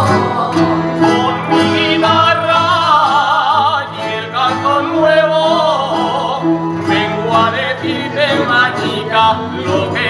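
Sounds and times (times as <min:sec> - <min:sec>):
folk band with guitars and accordion: 0:00.0 - 0:10.0.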